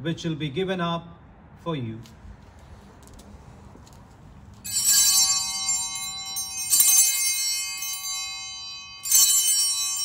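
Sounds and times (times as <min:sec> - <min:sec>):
altar bells ringing: 0:04.6 - 0:10.0.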